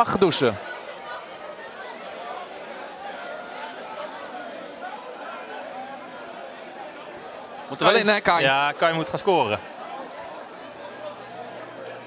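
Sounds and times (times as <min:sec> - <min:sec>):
faint chatter of voices: 0:00.0 - 0:12.0.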